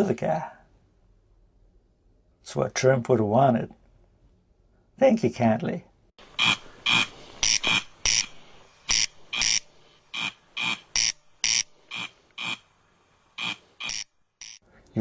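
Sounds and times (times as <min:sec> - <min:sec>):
corncrake rasping call: 0:06.2 - 0:12.7, 0:13.4 - 0:14.6.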